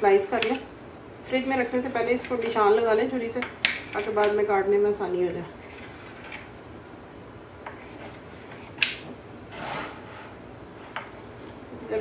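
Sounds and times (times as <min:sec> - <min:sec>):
knife scraping through dessert: 0:05.6 - 0:06.5, 0:09.5 - 0:10.4.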